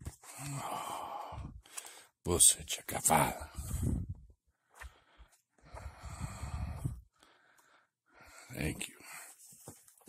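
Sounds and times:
man's long breathy sigh: 0.3 - 1.7, 5.8 - 7.0.

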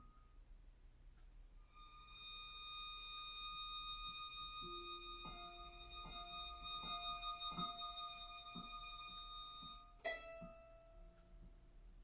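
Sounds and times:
violin holding long high note: 1.7 - 10.0.

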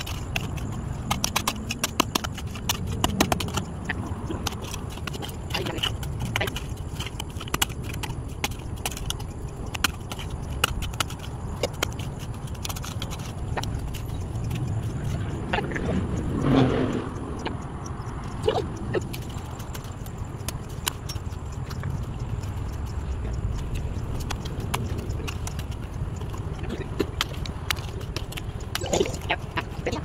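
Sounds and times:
hoe chopping and scraping soil: 0.0 - 14.6
steady low rumble: 0.0 - 30.0.

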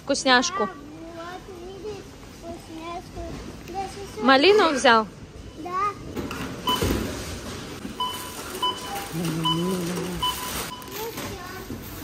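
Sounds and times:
barcode scanner beeping: 8.0 - 11.1.

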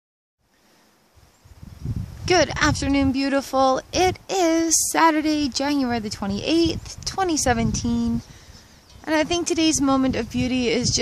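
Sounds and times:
wind buffeting microphone: 1.1 - 11.0.

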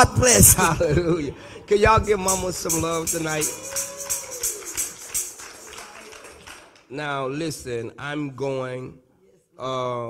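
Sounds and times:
tambourine shaken and struck: 2.0 - 6.5.

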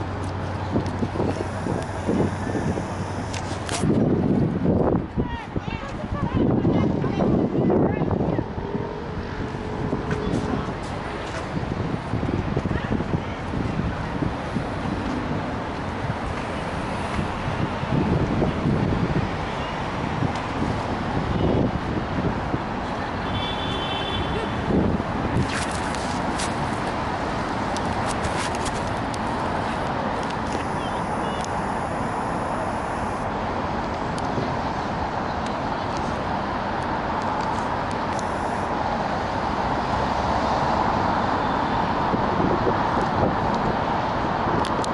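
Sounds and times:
road traffic rumble: 0.0 - 44.9.

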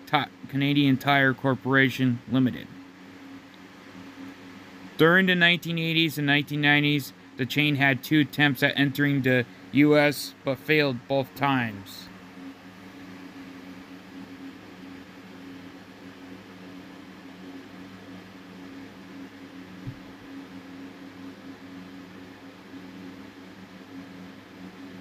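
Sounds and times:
low background hum: 0.0 - 25.0
faint knock: 19.8 - 20.1.

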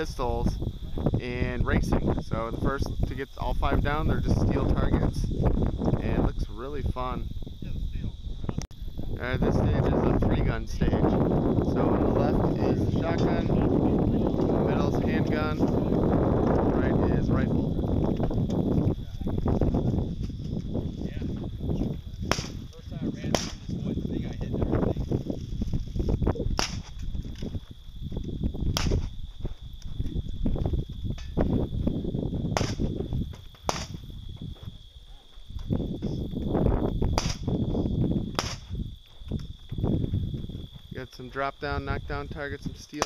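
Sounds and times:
wind rumbling on microphone: 0.0 - 43.0
sharp gunshots: 22.2 - 22.6, 23.2 - 23.6, 26.6 - 27.0, 28.7 - 29.1, 32.5 - 32.9, 33.7 - 34.0, 37.1 - 37.5, 38.3 - 38.7.

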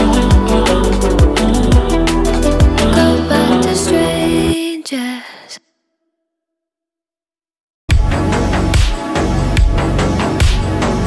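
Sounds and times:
woman singing breathy note: 0.0 - 5.6.

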